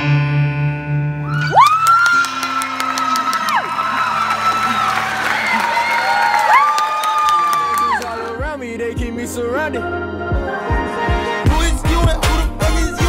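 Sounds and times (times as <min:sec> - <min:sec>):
audience cheering and whooping: 0:01.2 - 0:08.4.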